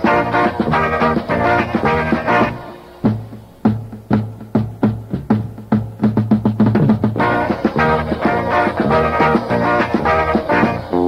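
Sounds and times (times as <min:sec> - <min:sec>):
drum kit playing alone: 0:00.0 - 0:11.0.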